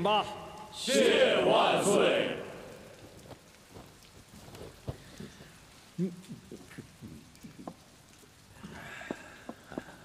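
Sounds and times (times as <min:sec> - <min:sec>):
rain falling: 0:00.0 - 0:10.0.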